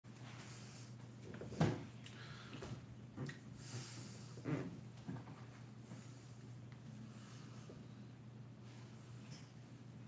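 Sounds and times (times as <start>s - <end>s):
low steady hum: 0.1s - 10.0s.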